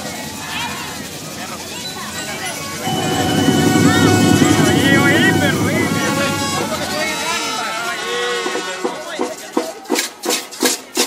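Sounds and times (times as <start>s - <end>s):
crowd voices: 2.3s - 8.0s
loud low rumble: 2.8s - 7.7s.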